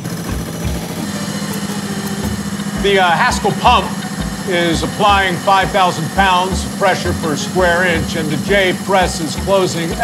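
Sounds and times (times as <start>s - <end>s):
hydraulic pump humming: 0.0s - 10.0s
man's voice: 2.8s - 10.0s.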